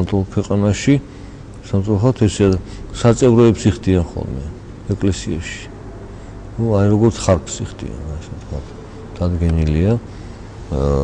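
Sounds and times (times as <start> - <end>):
low hesitation hum: 0.0 - 11.0
man speaking slowly: 6.6 - 10.1.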